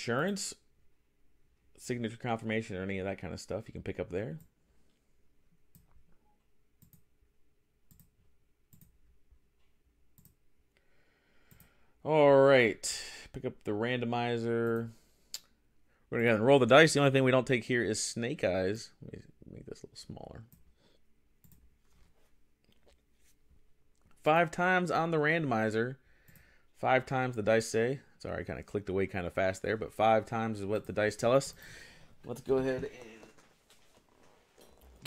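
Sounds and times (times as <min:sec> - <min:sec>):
computer mouse clicks: 0:06.8 - 0:07.1, 0:07.9 - 0:09.0, 0:09.6 - 0:10.4, 0:11.4 - 0:11.8, 0:21.4 - 0:21.6
faint computer mouse clicks: 0:07.9 - 0:08.1, 0:09.6 - 0:10.4, 0:11.5 - 0:11.7.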